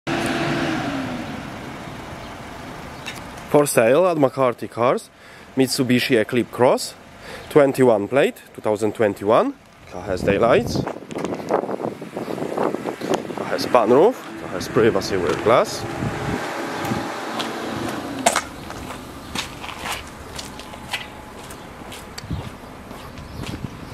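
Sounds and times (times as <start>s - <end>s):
steady outdoor hiss: 0.1s - 23.9s
wind on microphone: 9.9s - 21.2s, 21.8s - 23.9s
vehicle driving past: 12.8s - 22.0s.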